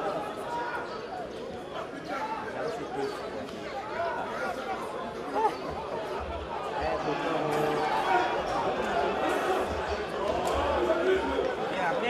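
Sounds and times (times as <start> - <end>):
people chattering and calling out: 0.0 - 12.0.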